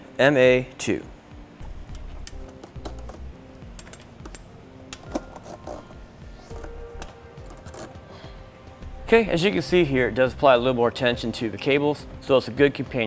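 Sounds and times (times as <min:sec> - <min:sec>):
faint background music: 0:00.0 - 0:13.0
metal hooks and cable clinking: 0:01.6 - 0:08.2.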